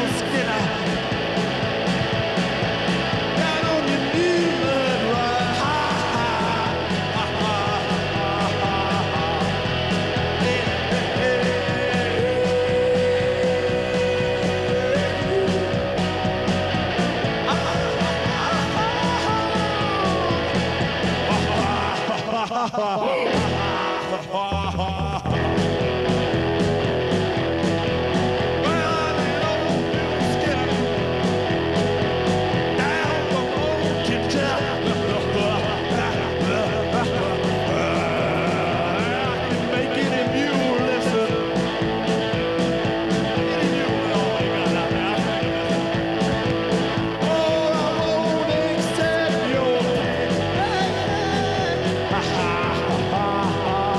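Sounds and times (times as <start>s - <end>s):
live rock band playing: 0.0s - 53.9s.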